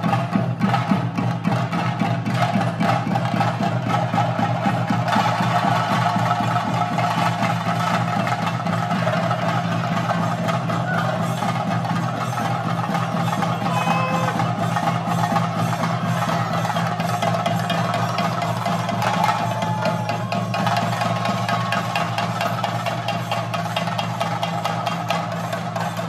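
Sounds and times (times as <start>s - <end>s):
drums beaten fast with sticks: 0.0s - 26.0s.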